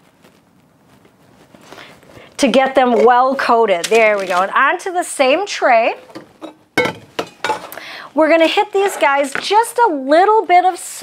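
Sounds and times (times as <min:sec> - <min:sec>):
metal bowl clanking on countertop: 0:06.0 - 0:07.8.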